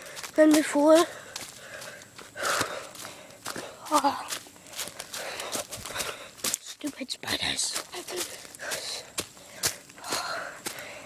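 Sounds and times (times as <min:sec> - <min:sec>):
person breathing: 0:00.0 - 0:00.4, 0:01.1 - 0:06.6, 0:08.2 - 0:11.0
footsteps on woodland path: 0:00.0 - 0:11.0.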